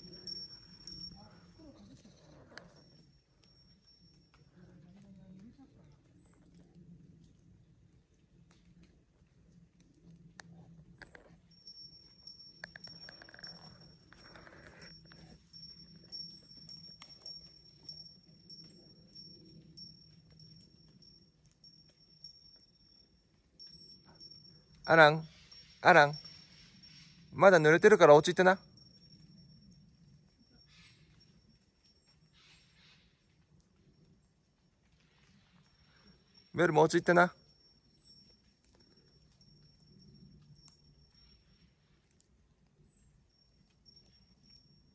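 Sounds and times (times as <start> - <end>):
faint steady high tone: 0.0 - 6.4, 10.4 - 44.9
faint ticks: 8.1 - 24.9.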